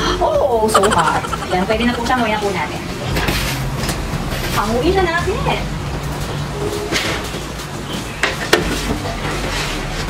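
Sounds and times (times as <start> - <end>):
metal trays clanking on oven racks: 6.6 - 10.0.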